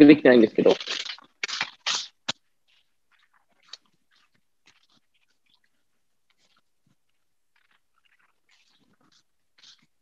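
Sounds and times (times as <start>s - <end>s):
faint clicks and rustles of handling: 0.6s - 10.0s.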